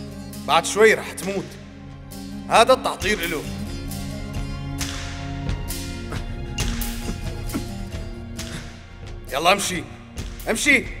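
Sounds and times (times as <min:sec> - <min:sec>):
tense background music: 0:00.0 - 0:11.0.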